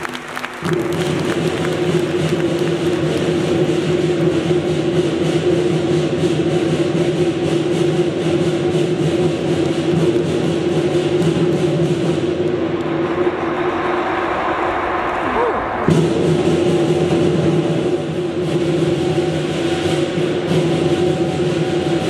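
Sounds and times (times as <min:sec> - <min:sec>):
drum beating: 0:00.0 - 0:22.0
cymbals clashing: 0:15.9 - 0:22.0.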